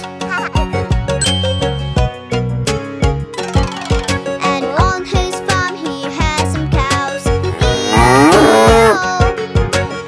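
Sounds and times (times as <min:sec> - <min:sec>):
children's song with steady beat: 0:04.3 - 0:07.4
cartoon cow mooing: 0:07.4 - 0:09.1.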